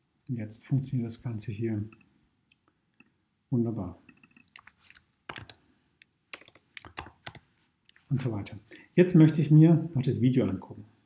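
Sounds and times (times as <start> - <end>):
faint keyboard typing: 4.1 - 5.6, 6.3 - 8.0.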